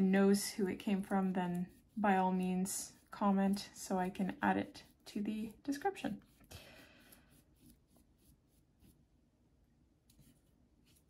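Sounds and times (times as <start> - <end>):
brush swishing across paper: 0.0 - 9.1, 10.1 - 11.0.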